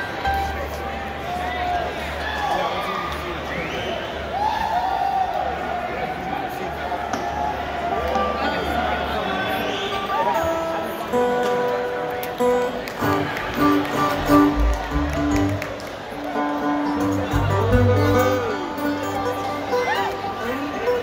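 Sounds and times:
crowd chatter: 0.0 - 21.0
string instruments tuning: 11.4 - 21.0
low bass thumps: 14.2 - 15.6.

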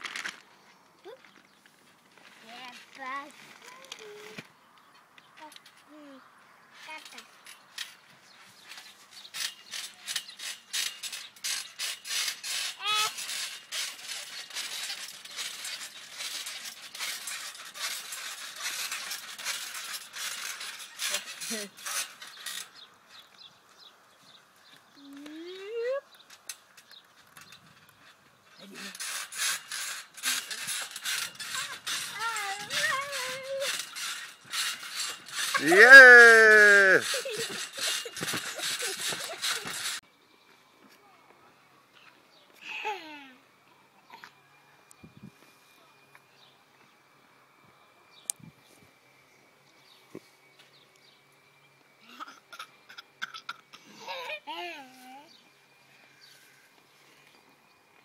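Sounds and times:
trampoline springs creaking: 0.0 - 40.0, 49.8 - 58.0
child shouting yay: 35.6 - 37.0
small child crying out: 35.6 - 37.2.

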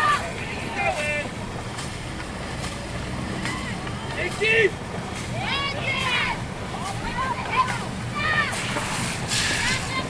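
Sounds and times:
people shouting calls: 0.0 - 1.4
paddles splashing water: 0.0 - 10.0.

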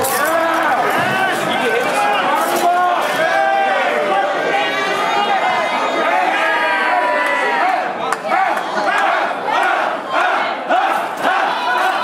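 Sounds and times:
crowd shouting in rhythm: 0.0 - 12.0.

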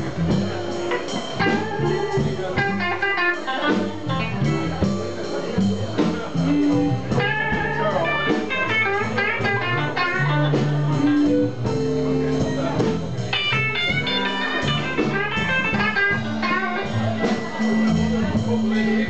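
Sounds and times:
drum kit: 0.0 - 19.0
electric guitar: 0.0 - 19.0.

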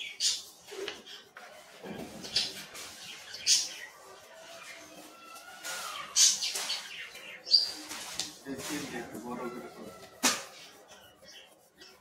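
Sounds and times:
pencil scratching on paper: 0.0 - 12.0.

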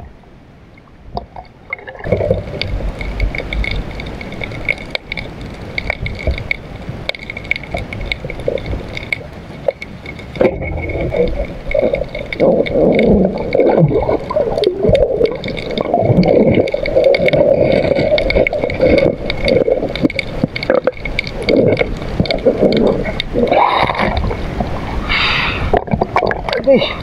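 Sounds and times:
water gurgling and sloshing: 0.0 - 27.0.

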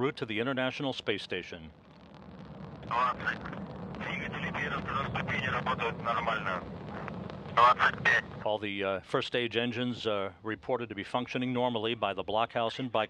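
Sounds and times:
rocket engines rumbling: 0.0 - 12.2
person talking: 2.9 - 3.4, 4.0 - 6.6.

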